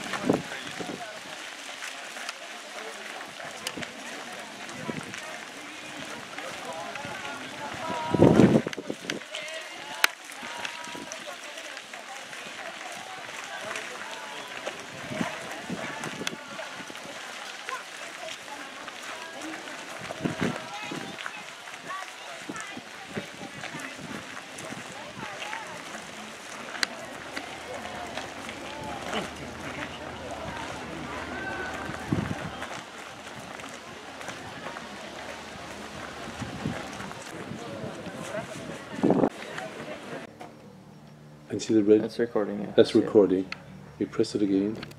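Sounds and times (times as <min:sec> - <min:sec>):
footsteps on gravel: 0:00.0 - 0:40.3
many people talking: 0:00.0 - 0:44.9.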